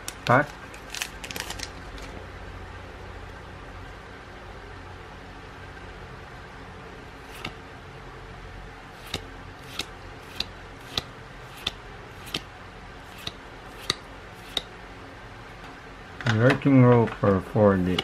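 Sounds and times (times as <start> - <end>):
cards snapping off a stack: 7.3 - 7.6.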